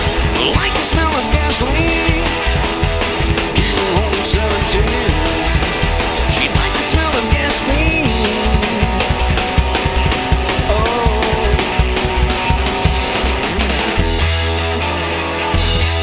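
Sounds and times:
fast drum beat: 0.0s - 14.8s
electric guitar lead: 0.0s - 16.0s
upright bass: 0.0s - 16.0s.

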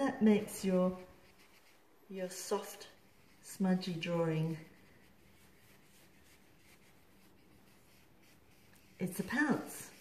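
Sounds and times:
soft rubbing on drawing paper: 0.0s - 10.0s.

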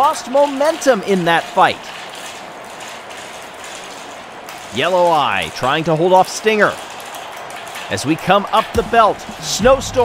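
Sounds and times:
marbles rolling on plastic track: 0.0s - 9.5s.

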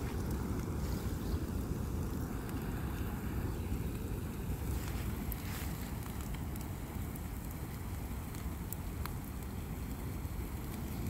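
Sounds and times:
fire crackling and popping: 0.0s - 11.0s
flames rumbling: 0.0s - 11.0s.

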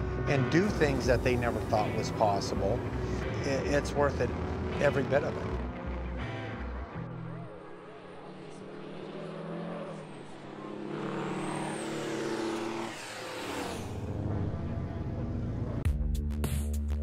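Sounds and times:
diesel truck engines: 0.0s - 15.8s
truck passing by: 0.0s - 15.8s.

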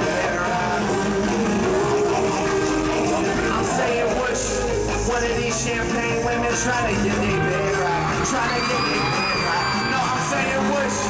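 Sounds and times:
live band music over sound system: 0.0s - 11.0s.

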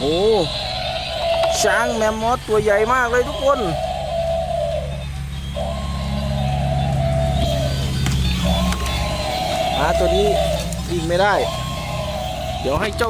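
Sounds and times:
tinny electronic tones: 0.0s - 13.0s
toy gear motor humming: 0.0s - 13.0s.

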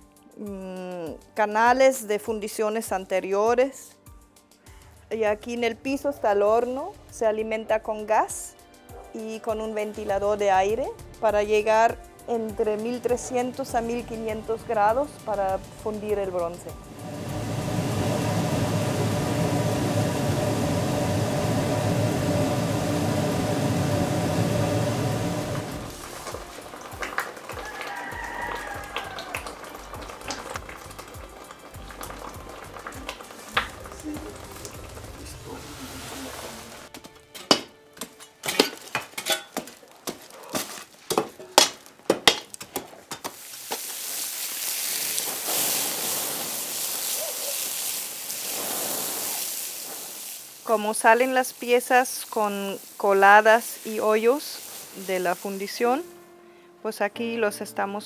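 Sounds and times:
furnace air blower roaring: 16.7s - 26.5s
steady hiss: 32.6s - 36.9s, 43.3s - 56.2s.

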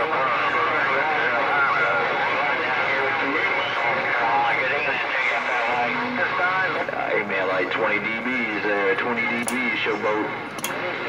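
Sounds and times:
distorted voice over radio: 0.0s - 11.0s.

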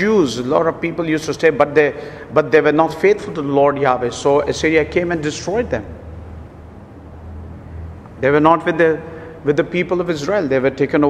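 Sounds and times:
low hum with faint hiss: 0.0s - 11.0s.

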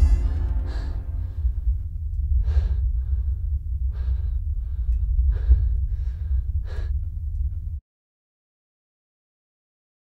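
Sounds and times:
person breathing hard: 0.0s - 1.7s, 2.4s - 7.2s
steady low rumble: 0.0s - 7.8s.

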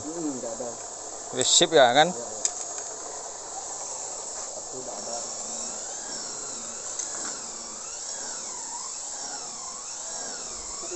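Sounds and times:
spindle machine motor whirring: 0.0s - 10.9s.

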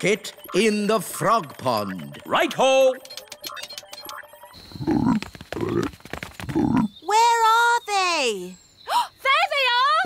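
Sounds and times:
cartoon frogs croaking: 3.5s - 7.1s.

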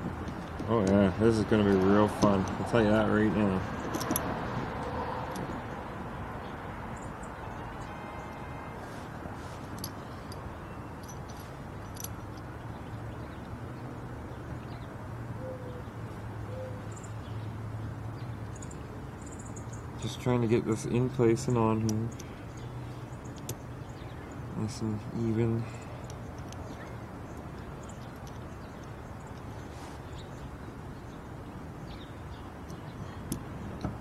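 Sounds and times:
outdoor background noise: 0.0s - 34.0s
faint metallic clicks: 23.2s - 23.6s.

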